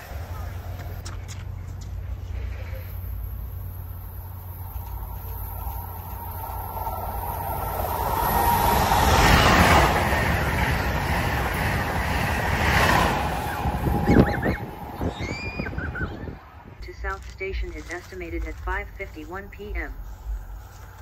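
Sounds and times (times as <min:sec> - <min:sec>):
high-speed train passing: 0:00.0 - 0:21.0.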